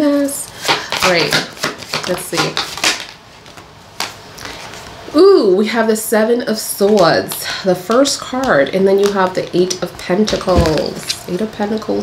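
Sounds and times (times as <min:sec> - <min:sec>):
tarot cards tapping: 0:00.5 - 0:03.1, 0:07.3 - 0:11.2
cards handling noise: 0:00.5 - 0:04.9.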